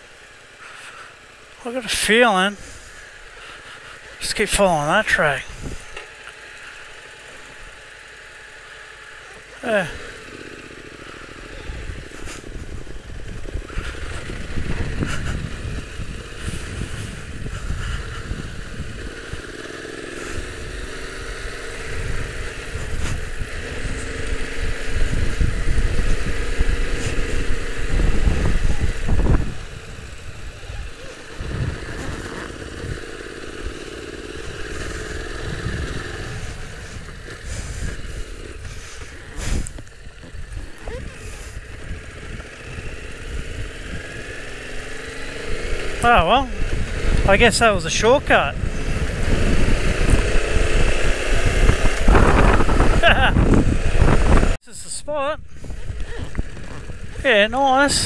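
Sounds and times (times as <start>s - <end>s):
motorcycle engine revving: 0.0s - 54.6s, 55.3s - 58.0s.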